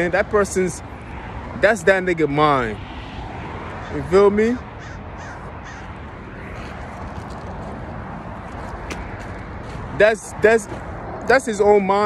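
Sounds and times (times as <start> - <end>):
outdoor background noise: 0.0 - 12.0
bird calling: 3.8 - 6.6.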